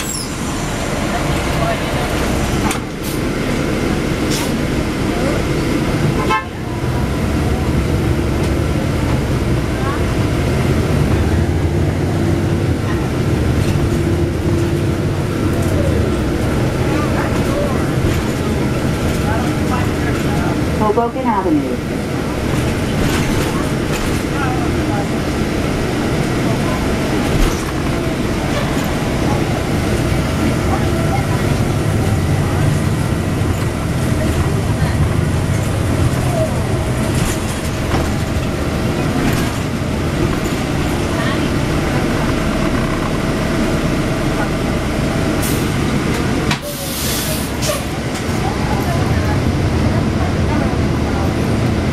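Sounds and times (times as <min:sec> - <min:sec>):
bus engine and road rumble: 0:00.0 - 0:51.9.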